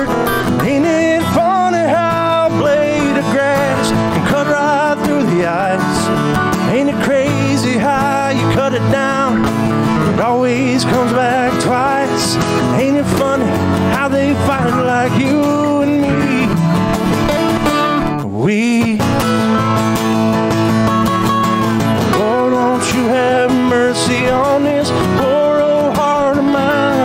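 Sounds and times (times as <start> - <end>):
acoustic guitar strumming: 0.0 - 27.0
man singing country song: 0.0 - 27.0.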